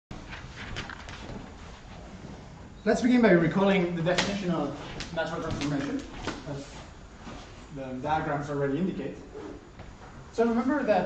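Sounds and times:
room hiss: 0.1 - 11.0.

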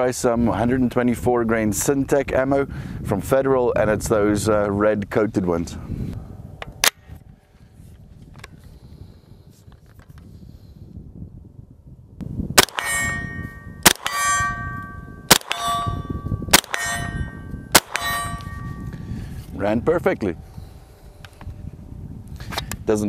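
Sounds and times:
carbine gunshots: 12.6 - 18.8
steel target clanging: 12.6 - 19.0.

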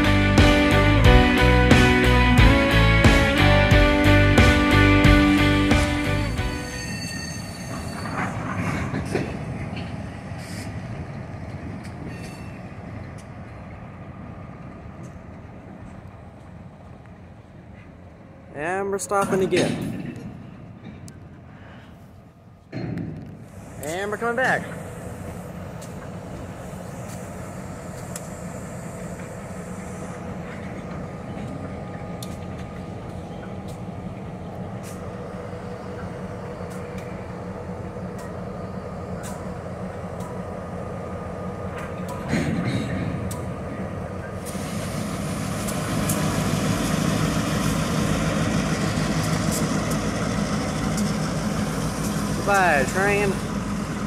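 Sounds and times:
diesel locomotive engine drone: 0.0 - 54.0.

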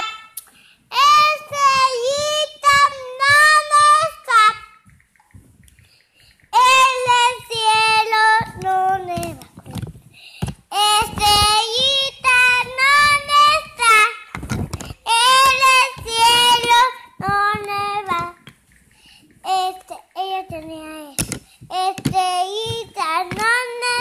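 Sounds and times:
child singing: 0.0 - 4.8, 6.5 - 9.9, 10.6 - 18.5, 19.4 - 24.0.

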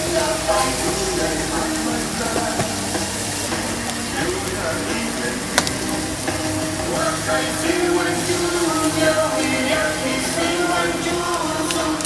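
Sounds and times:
meat sizzling on griddle: 0.0 - 12.0.

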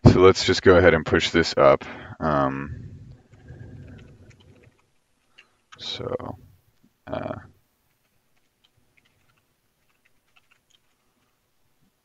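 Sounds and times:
low background rumble: 2.3 - 6.8
keyboard typing: 3.1 - 6.1, 7.9 - 11.4.

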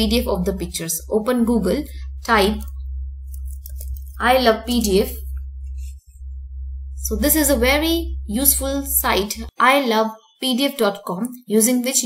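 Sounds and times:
low electrical hum: 0.0 - 9.5.

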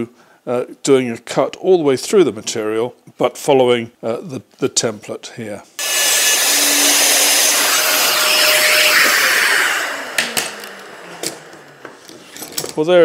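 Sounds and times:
router running and spinning down: 5.8 - 12.4.

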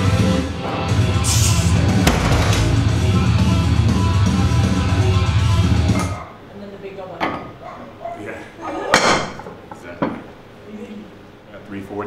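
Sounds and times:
background music: 0.0 - 6.3.

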